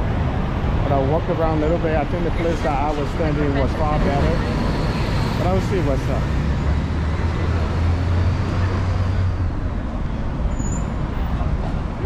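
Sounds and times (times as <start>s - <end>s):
passing vehicle engine rumble: 0.0s - 12.0s
street noise: 0.0s - 12.0s.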